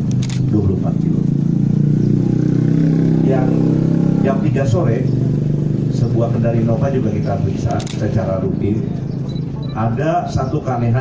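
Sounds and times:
man speaking into microphone: 0.4s - 1.3s, 3.2s - 5.1s, 5.9s - 9.0s, 9.6s - 11.0s.

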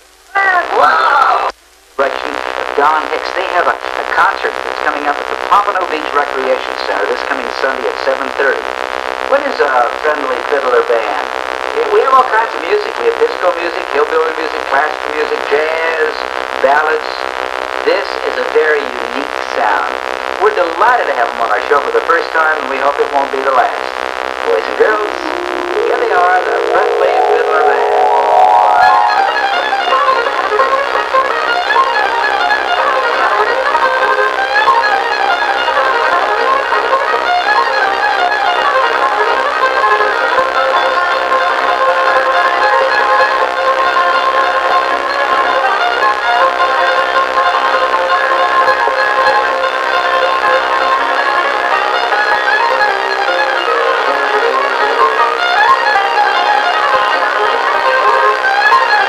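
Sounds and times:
fiddle-led string band: 0.0s - 59.0s.

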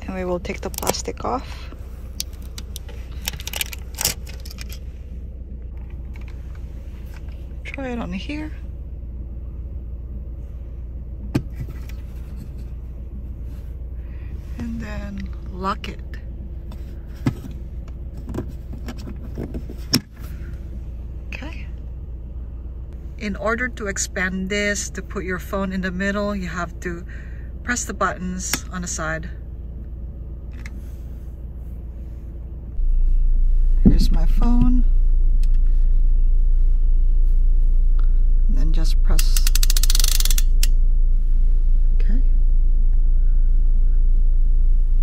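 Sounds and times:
steady low rumble: 0.0s - 45.0s.

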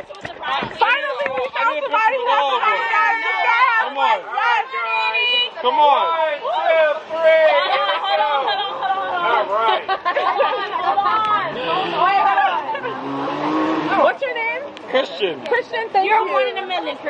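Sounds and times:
people talking and laughing: 0.0s - 17.0s
car driving past: 11.2s - 15.4s.

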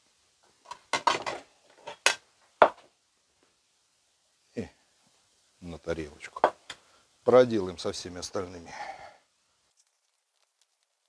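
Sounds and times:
ceramic plate clattering: 0.7s - 2.8s.

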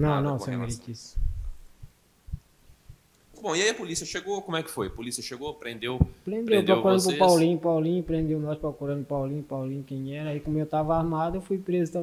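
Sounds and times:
microphone handling thumps: 1.2s - 3.1s, 6.0s - 6.2s.

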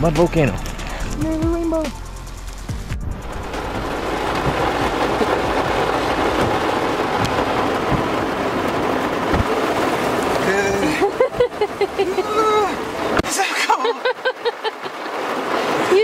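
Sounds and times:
heavy rain on vehicle roof: 0.0s - 16.0s.

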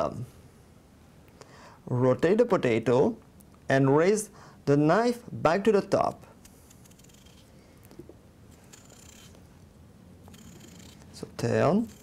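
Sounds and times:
knife scraping potato: 6.4s - 7.6s, 8.5s - 9.5s, 10.2s - 12.0s.

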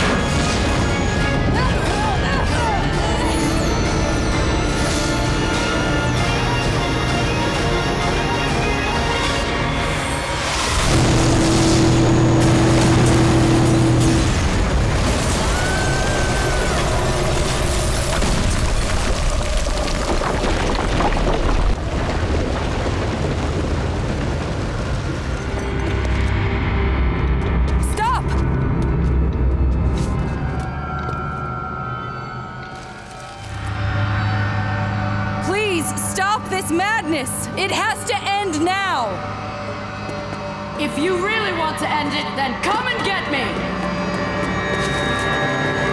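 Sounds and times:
dramatic orchestral music: 0.0s - 18.4s, 25.6s - 45.9s
explosion and crash: 10.3s - 26.3s.

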